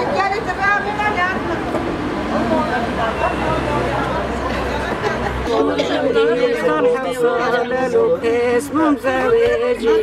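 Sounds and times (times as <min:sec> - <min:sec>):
women chattering: 0:00.0 - 0:08.0.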